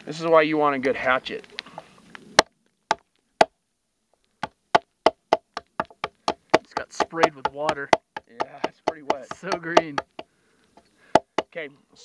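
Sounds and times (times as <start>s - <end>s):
hatchet chopping wood: 2.4s - 3.5s, 4.4s - 10.3s, 11.1s - 11.5s.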